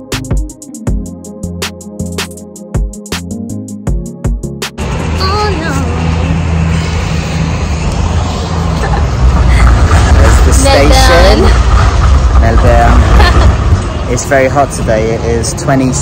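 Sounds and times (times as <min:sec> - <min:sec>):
city street traffic: 0:00.0 - 0:16.0
heavy vehicle engine humming: 0:03.2 - 0:16.0
voices talking: 0:09.5 - 0:11.7.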